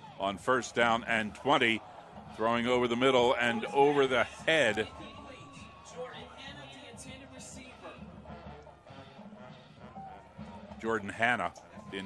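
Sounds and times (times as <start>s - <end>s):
background music: 0.0s - 12.0s
crowd voices: 0.0s - 12.0s
commentator speaking: 0.2s - 7.9s.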